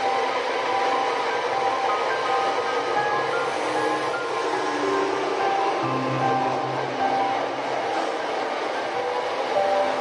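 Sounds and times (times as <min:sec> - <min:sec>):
slow piano music: 0:00.0 - 0:10.0.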